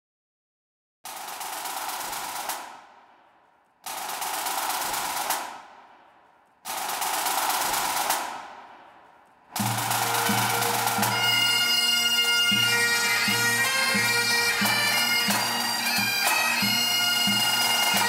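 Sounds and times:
snare drum rolls: 1.1s - 3.0s, 3.8s - 6.1s, 6.7s - 11.8s, 14.6s - 18.0s
bagpipe drones humming: 9.6s - 18.0s.

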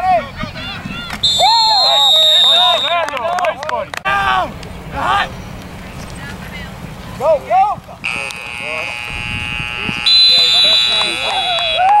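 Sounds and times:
voices shouting: 0.0s - 5.4s, 6.5s - 12.0s.

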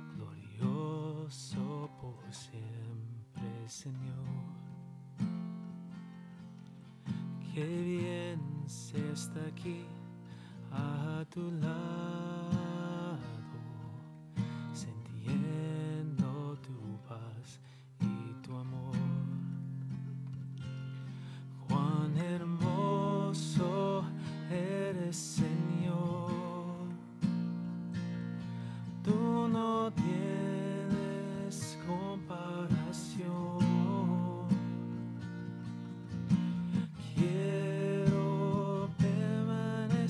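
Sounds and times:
acoustic guitar strumming: 0.0s - 40.0s
person singing: 21.6s - 27.0s, 29.0s - 34.8s, 36.8s - 40.0s.

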